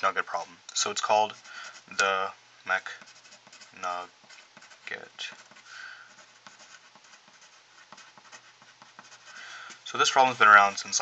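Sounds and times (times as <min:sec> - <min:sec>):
pencil scratching on paper: 0:01.2 - 0:01.9, 0:02.8 - 0:11.0.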